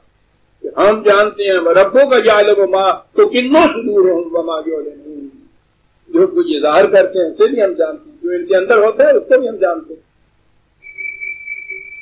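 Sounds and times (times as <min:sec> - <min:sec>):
faint low hum: 0:00.0 - 0:12.0
high-pitched whistle-like tone: 0:10.8 - 0:12.0.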